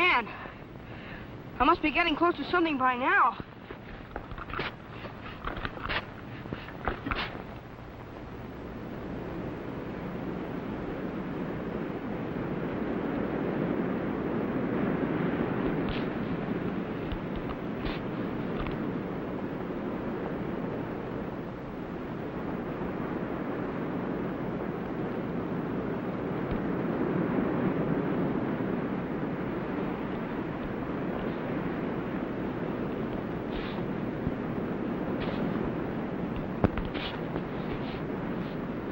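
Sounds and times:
surf washing on shore: 9.0s - 38.9s.

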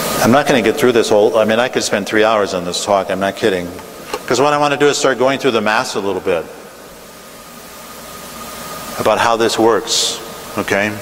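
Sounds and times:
room tone hiss: 0.0s - 11.0s.

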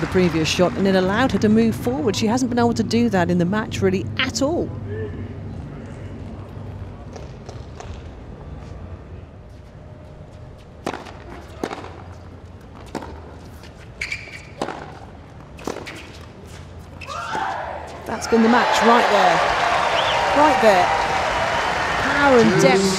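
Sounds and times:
crowd applause: 18.3s - 22.9s
crowd murmur: 22.0s - 22.9s.

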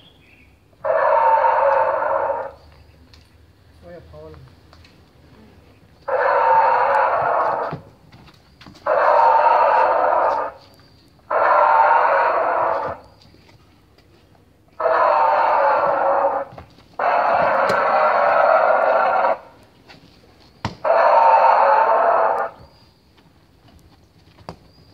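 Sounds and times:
recorded dinosaur roars through speaker: 0.8s - 2.6s, 6.1s - 7.8s, 8.9s - 10.6s, 11.3s - 13.0s, 14.8s - 19.5s, 20.8s - 22.6s.

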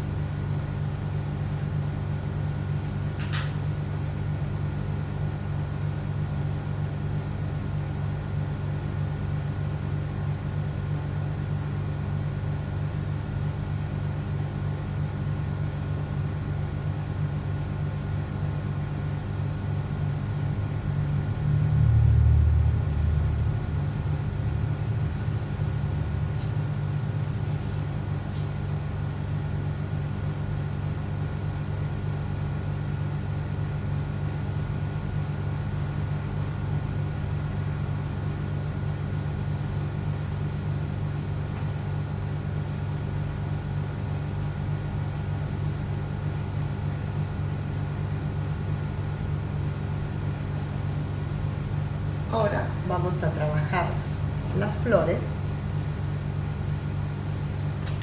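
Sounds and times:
low rumble and hum: 18.2s - 58.0s.

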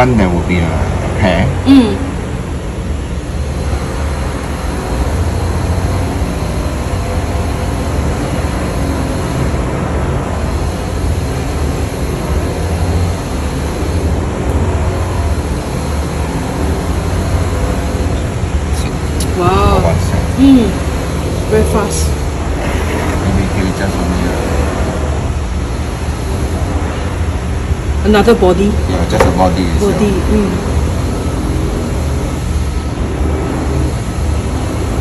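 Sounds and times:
strong low hum: 0.0s - 35.0s.

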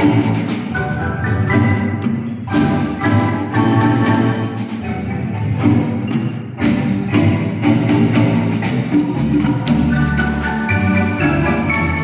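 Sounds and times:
double bass line: 0.0s - 12.0s
marimba ensemble playing: 0.0s - 12.0s.

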